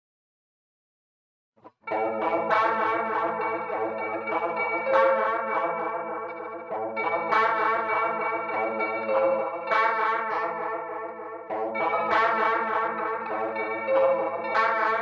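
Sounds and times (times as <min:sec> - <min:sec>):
distorted electric guitar chords: 0:01.7 - 0:15.0.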